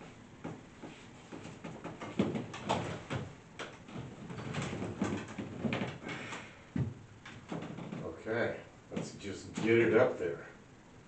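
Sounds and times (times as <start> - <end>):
wooden bench knocks and creaks: 0.4 - 8.2.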